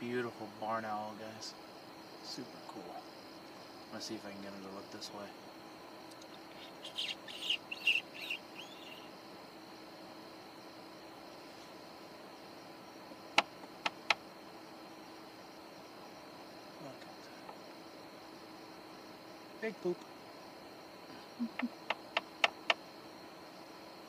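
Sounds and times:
high insect trill: 0.0s - 24.0s
high squeaks imitating mouse: 6.5s - 9.1s.

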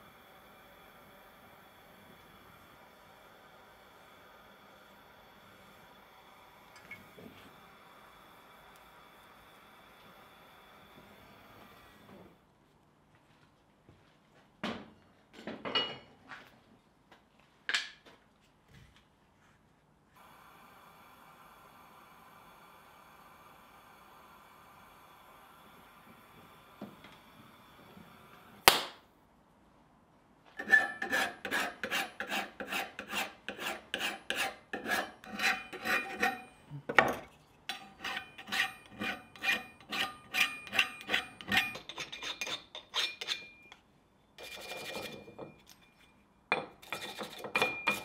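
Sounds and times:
gas torch hissing: 0.0s - 12.4s, 20.2s - 28.7s
hand file rasping on steel: 30.6s - 36.6s, 37.7s - 43.6s, 44.4s - 45.3s.

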